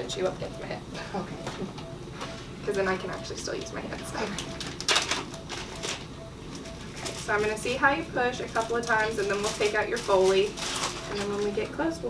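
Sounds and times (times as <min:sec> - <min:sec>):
soft rustling: 0:05.6 - 0:11.8.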